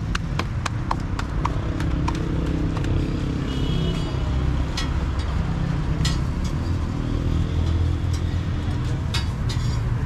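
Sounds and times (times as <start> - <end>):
traffic rumble: 0.0 - 10.0
vehicle engine running nearby: 0.0 - 10.0.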